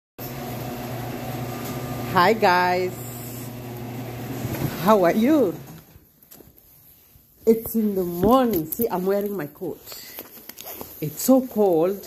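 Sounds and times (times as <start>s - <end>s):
low machine hum: 0.3s - 5.7s.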